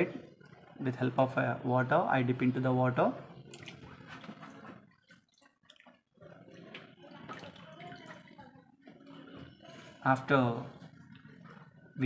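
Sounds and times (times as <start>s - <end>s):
water splashing in a plastic tray: 3.5s - 8.4s.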